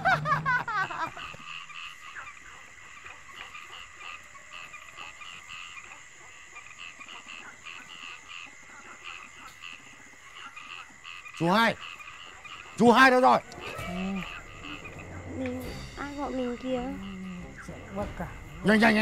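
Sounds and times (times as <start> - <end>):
people laughing: 0.0 - 1.6
frogs croaking: 0.0 - 19.0.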